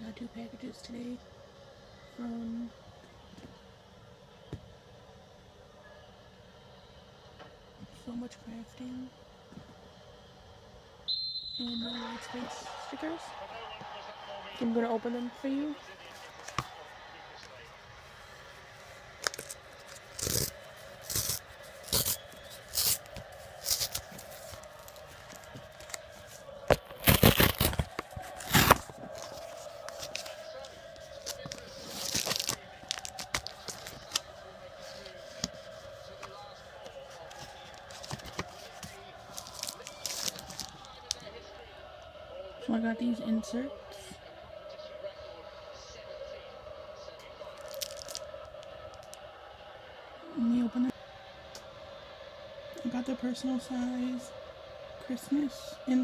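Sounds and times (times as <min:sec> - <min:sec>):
paper rustling: 0:18.8 - 0:41.2, 0:47.6 - 0:48.2
envelope being torn open: 0:19.2 - 0:26.1, 0:26.7 - 0:30.4, 0:31.1 - 0:34.3, 0:37.8 - 0:41.2, 0:47.6 - 0:48.3.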